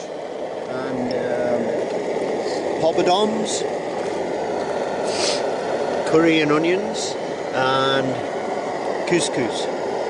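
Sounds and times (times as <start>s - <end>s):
camp stove flame rushing: 0.0s - 10.0s.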